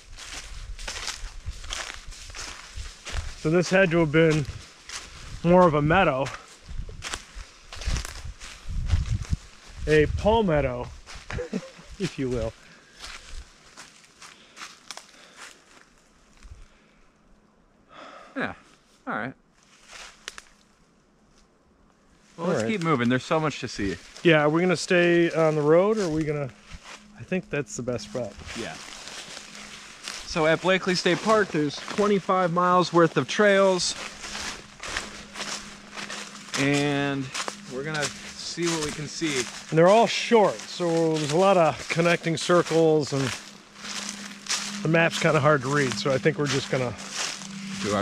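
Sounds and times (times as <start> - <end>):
footsteps on dry leaves: 0.0 - 16.5, 19.6 - 20.8, 22.2 - 48.0.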